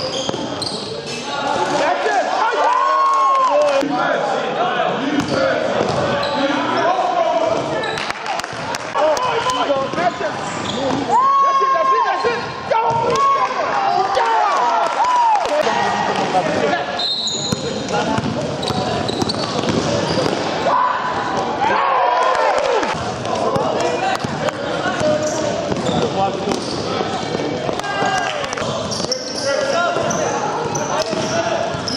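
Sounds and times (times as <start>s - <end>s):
ball bouncing on court: 12.9s - 13.3s, 17.4s - 20.5s, 22.9s - 29.2s, 30.0s - 31.9s.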